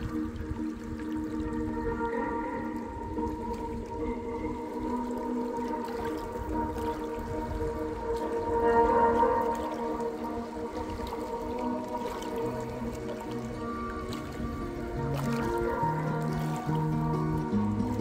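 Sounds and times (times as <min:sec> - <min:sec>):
slow ambient music: 0:00.0 - 0:18.0
waves lapping on rocks: 0:00.0 - 0:18.0.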